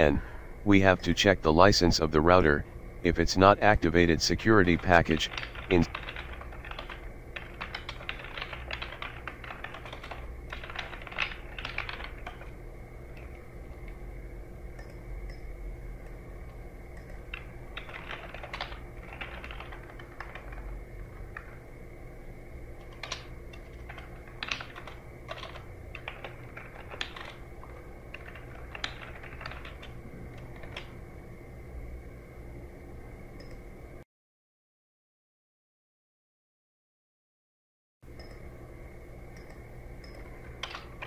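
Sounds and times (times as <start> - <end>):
faint steady low hum: 0.0 - 34.0, 38.1 - 41.0
typing on computer keyboard: 5.1 - 12.5, 17.0 - 21.6, 22.8 - 31.0, 39.4 - 41.0.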